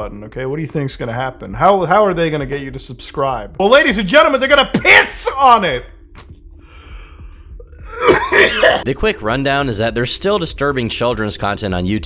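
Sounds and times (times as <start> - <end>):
people talking: 0.0 - 5.9, 8.6 - 12.0.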